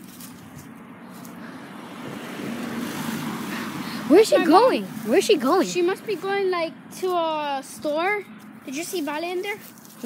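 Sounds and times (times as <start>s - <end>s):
car driving past: 1.0s - 6.2s.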